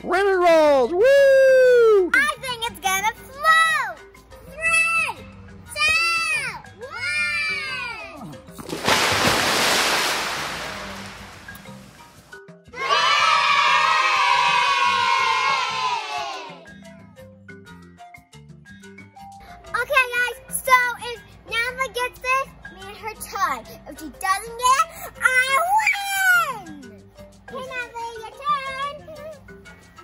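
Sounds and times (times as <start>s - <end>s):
light background music: 0.0s - 30.0s
splash in swimming pool: 8.6s - 12.2s
children whooping: 12.8s - 16.6s
voices cheering: 12.8s - 16.6s.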